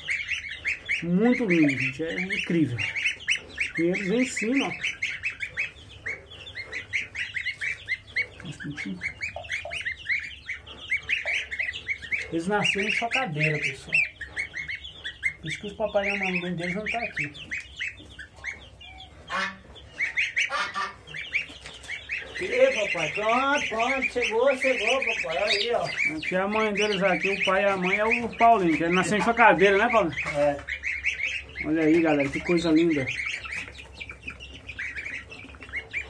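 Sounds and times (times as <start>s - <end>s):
goslings and chicks peeping: 0.0s - 36.0s
harsh goose calls: 0.0s - 36.0s.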